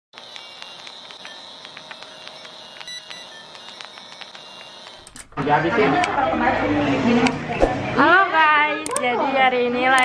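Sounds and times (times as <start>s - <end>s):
crackles and pops: 0.2s - 5.0s.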